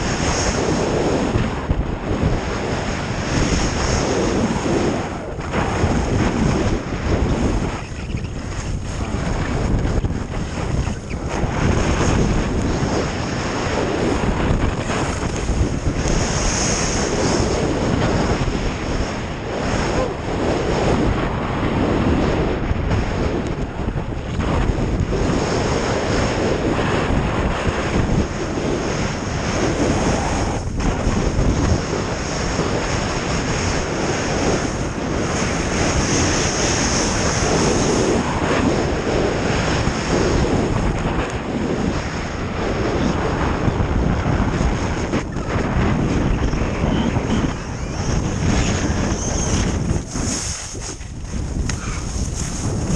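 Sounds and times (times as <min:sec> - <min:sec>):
wind rushing over microphone: 0:00.0 - 0:52.9
skis scraping on snow: 0:02.5 - 0:21.0, 0:44.6 - 0:52.9.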